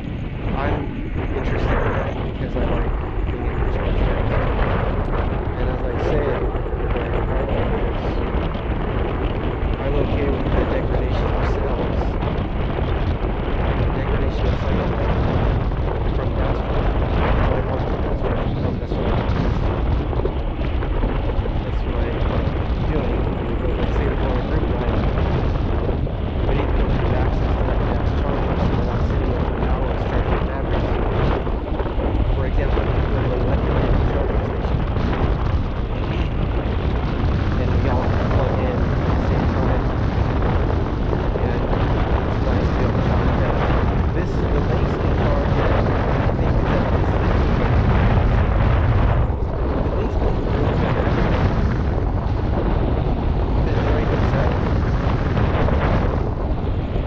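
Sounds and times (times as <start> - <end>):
wind buffeting microphone: 0.0 - 57.0.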